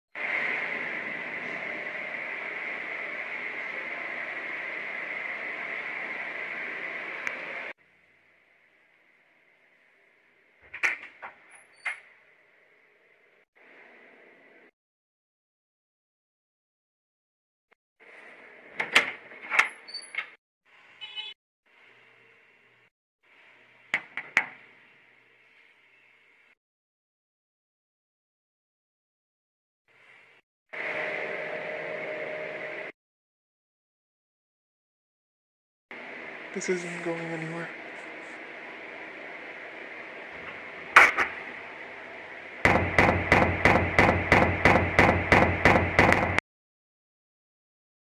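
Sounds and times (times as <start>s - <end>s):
knocks on a door: 42.7s - 46.4s
loud rapid banging on door: 42.7s - 46.4s.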